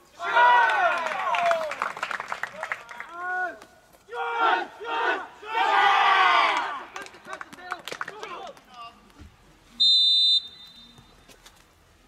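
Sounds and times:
team shouting together: 0:03.2 - 0:06.9.

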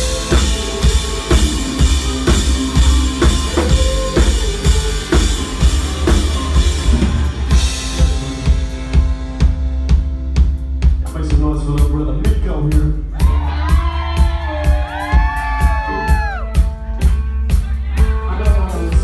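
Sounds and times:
low sustained bass: 0:00.0 - 0:10.8
rock drum kit beat: 0:00.0 - 0:19.0.

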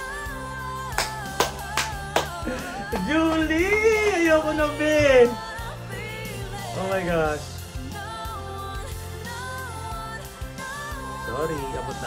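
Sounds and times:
hand claps: 0:00.9 - 0:03.6.

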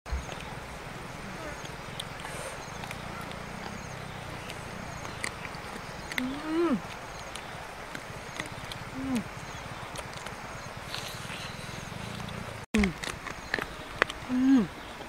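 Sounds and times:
chewing meat: 0:00.1 - 0:15.0
crunching clicks: 0:01.6 - 0:14.3
woman humming mm: 0:06.2 - 0:06.9, 0:09.0 - 0:09.3, 0:14.3 - 0:14.7.

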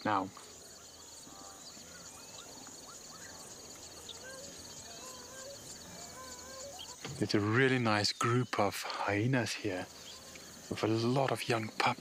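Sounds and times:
high insect chirping: 0:00.0 - 0:12.0
whistled animal calls: 0:01.3 - 0:03.4.

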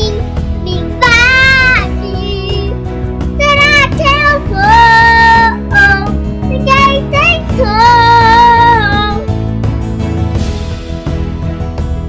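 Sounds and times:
girl singing: 0:00.0 - 0:09.3
backing music: 0:00.0 - 0:12.0.

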